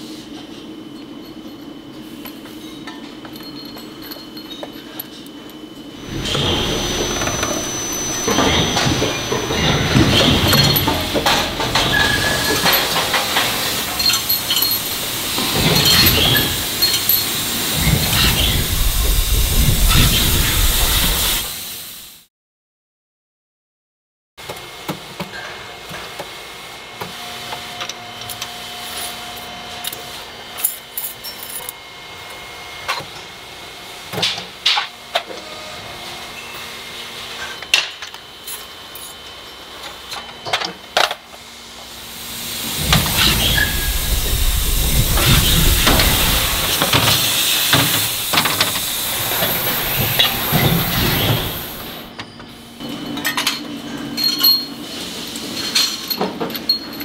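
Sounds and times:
loud rumbling roar: 17.5 - 21.5, 42.5 - 52.1.

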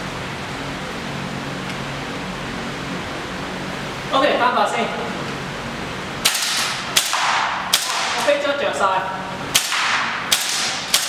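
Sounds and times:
airsoft rifle shots: 6.2 - 8.4, 9.5 - 11.0.

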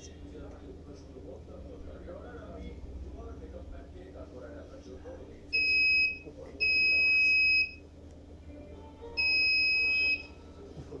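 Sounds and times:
high electronic buzzer beeps: 9.2 - 10.3.

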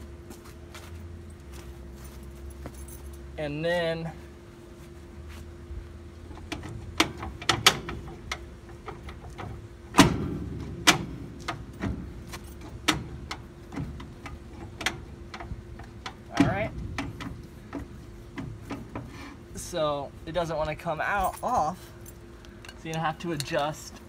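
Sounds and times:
metal brake drum clunking: 6.4 - 19.3.

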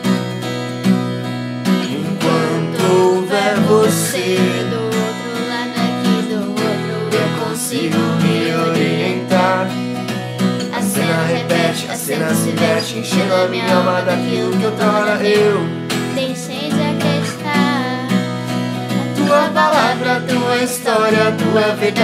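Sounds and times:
acoustic guitar strumming: 0.0 - 22.0
person singing: 1.8 - 22.0.

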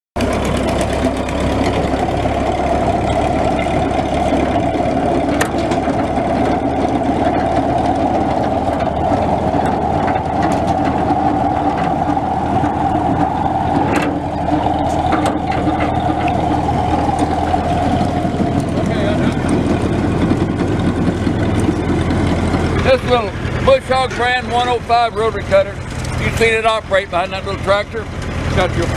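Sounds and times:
tractor engine and cutter hum: 0.2 - 28.9.

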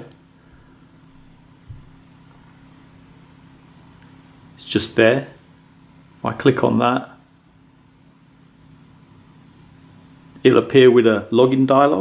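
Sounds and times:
steady low hum: 0.0 - 12.0
soft low thump: 1.6 - 2.0.

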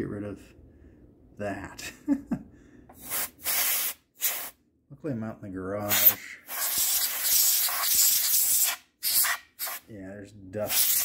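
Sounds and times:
compressed air spray hissing: 3.0 - 4.6, 5.9 - 9.9, 10.6 - 11.0.

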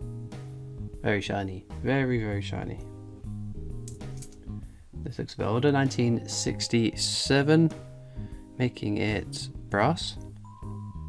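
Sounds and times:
lounge music with guitar: 0.0 - 11.0.

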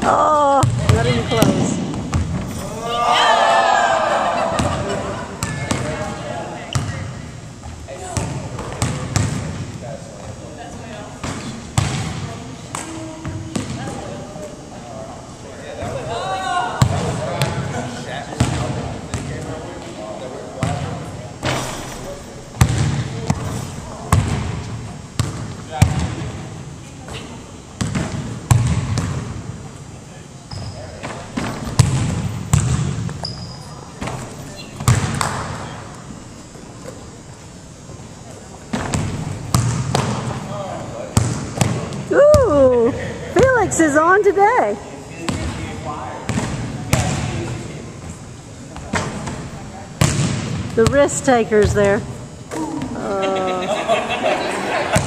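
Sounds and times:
people talking: 0.0 - 1.8, 42.1 - 48.0, 50.8 - 55.0
basketballs bouncing on wood floor: 0.0 - 2.5, 7.6 - 9.6, 11.2 - 14.0, 18.4 - 19.3, 22.6 - 23.5, 27.8 - 29.4, 30.5 - 33.2, 34.8 - 35.6, 38.7 - 40.4, 41.2 - 42.6, 50.0 - 52.1.

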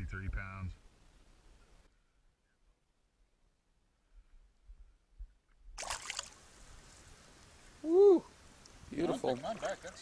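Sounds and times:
fish splashing at water surface: 5.8 - 6.5.

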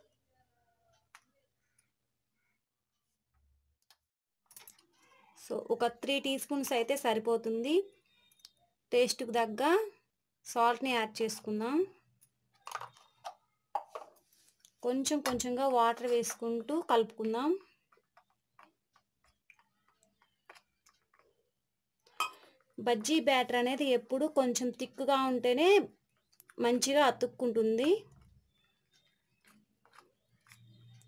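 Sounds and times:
woman speaking: 8.9 - 12.0, 14.8 - 17.7, 22.8 - 25.9, 26.6 - 28.1.

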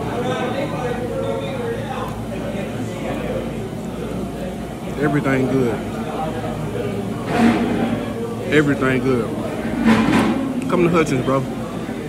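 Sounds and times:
indistinct voices: 0.0 - 12.0
low room hum: 0.0 - 12.0.

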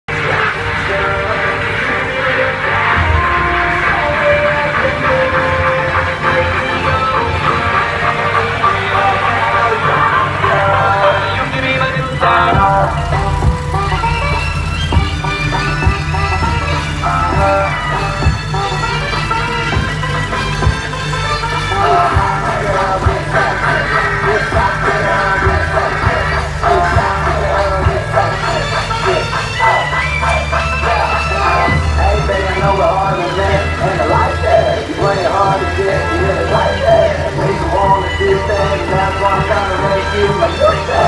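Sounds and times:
loud dance music with bass: 0.1 - 41.0.

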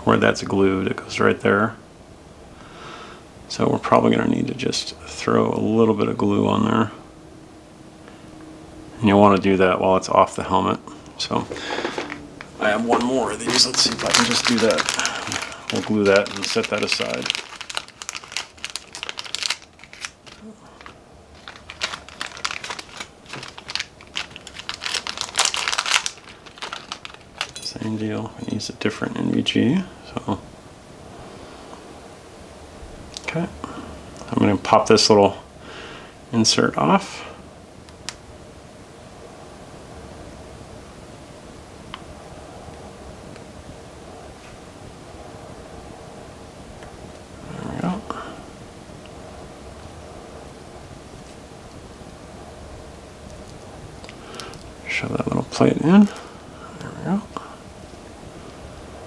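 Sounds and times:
low room noise: 0.0 - 59.0
plastic bag crinkling: 11.5 - 28.1, 53.4 - 54.8, 55.5 - 56.5.

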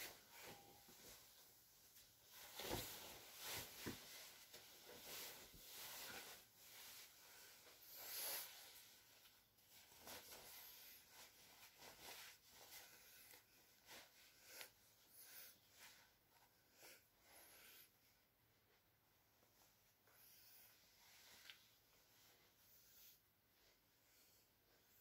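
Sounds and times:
clothing rustling: 0.0 - 17.0.

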